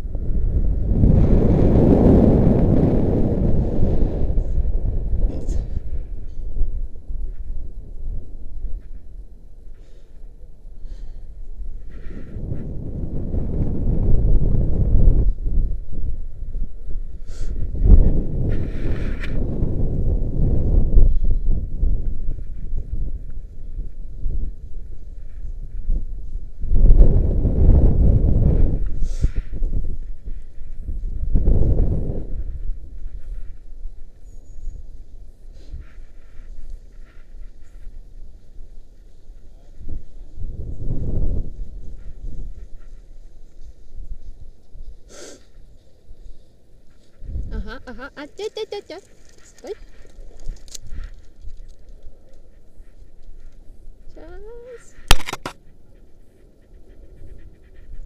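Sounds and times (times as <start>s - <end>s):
wind buffeting microphone: 0.0s - 58.0s
sharp click: 55.0s - 55.6s.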